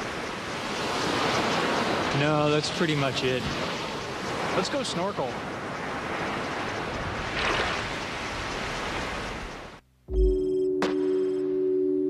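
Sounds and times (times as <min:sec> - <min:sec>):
waves washing on a beach: 0:00.0 - 0:09.8.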